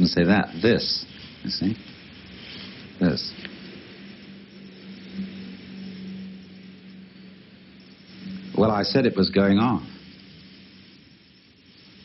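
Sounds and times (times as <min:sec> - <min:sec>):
low steady hum: 0:00.0 - 0:12.0
steady hiss: 0:00.0 - 0:12.0.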